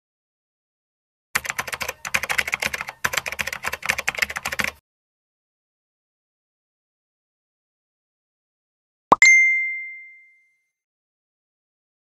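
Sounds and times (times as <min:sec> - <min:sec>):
keyboard typing clicks: 0:01.4 - 0:04.8.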